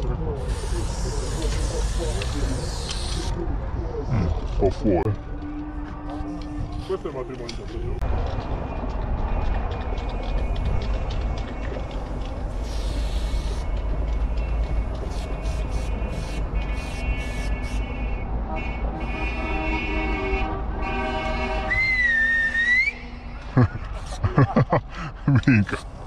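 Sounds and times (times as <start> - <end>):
spray paint can hissing: 0.4 - 3.3, 12.4 - 17.9
wavering whistle-like tone: 21.7 - 23.2.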